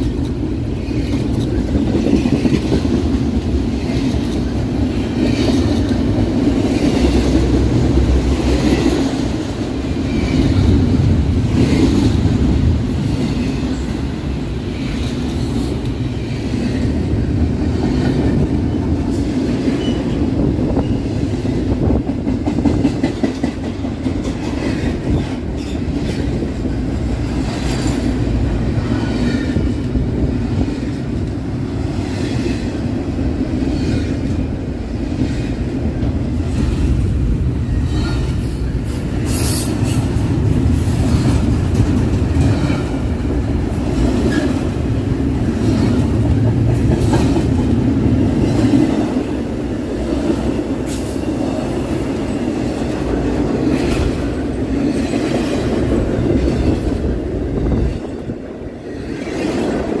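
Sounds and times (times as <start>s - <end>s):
train clicks and clanks: 0.0s - 60.0s
train wheels rumbling on rails: 0.0s - 60.0s.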